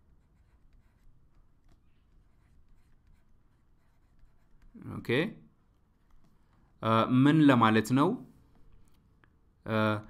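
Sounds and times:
stylus scratching on drawing surface: 0:00.0 - 0:04.9.

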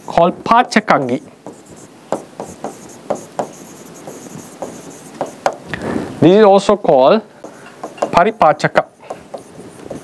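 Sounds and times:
pen scratching on glass: 0:01.0 - 0:05.6, 0:07.8 - 0:10.0.

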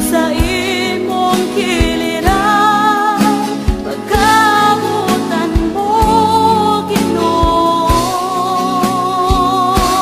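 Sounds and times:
person singing worship song: 0:00.0 - 0:10.0
band with steady drum beat: 0:03.2 - 0:10.0.

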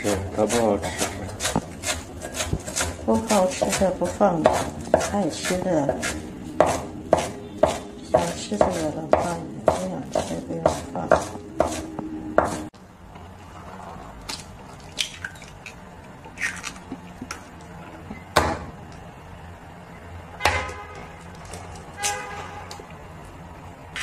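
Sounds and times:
cleaver chopping on wooden board: 0:00.5 - 0:05.2, 0:05.9 - 0:11.8, 0:12.4 - 0:12.6.

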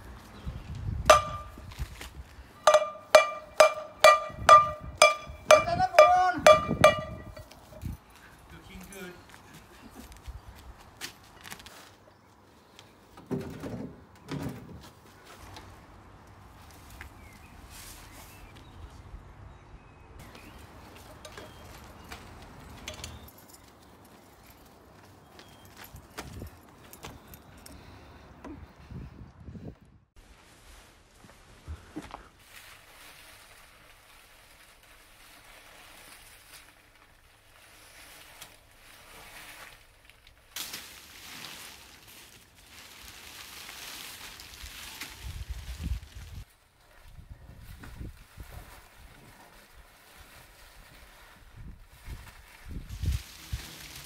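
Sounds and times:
frying pan clanging: 0:01.1 - 0:01.6, 0:02.7 - 0:07.5.

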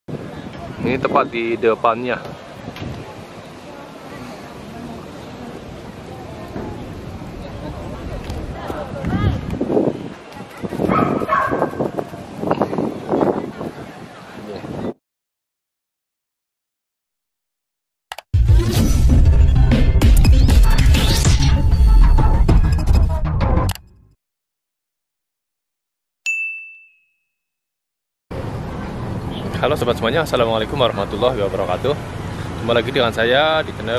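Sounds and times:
people talking: 0:00.2 - 0:11.2, 0:11.9 - 0:15.0, 0:28.9 - 0:32.0, 0:32.6 - 0:33.9
notification bell ding: 0:26.3 - 0:27.3.

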